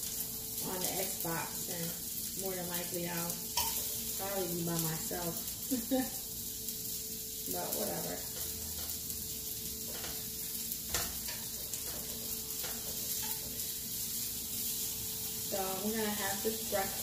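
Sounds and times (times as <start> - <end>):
sausage sizzling in a frying pan: 0.0 - 17.0.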